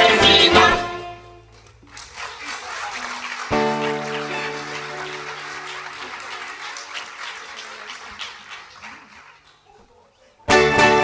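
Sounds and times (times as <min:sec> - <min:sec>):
small audience applauding: 0:01.5 - 0:10.2.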